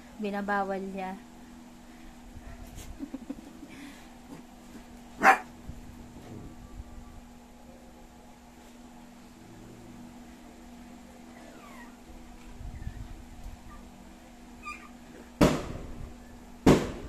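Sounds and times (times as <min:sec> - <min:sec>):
dogs yipping: 0:05.2 - 0:05.5, 0:11.3 - 0:12.0, 0:14.6 - 0:15.0
dogs whining: 0:11.2 - 0:14.0, 0:14.6 - 0:15.2.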